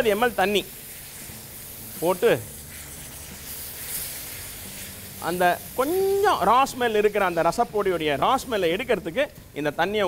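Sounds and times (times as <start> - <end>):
vegetables sizzling in oil: 0.0 - 9.6.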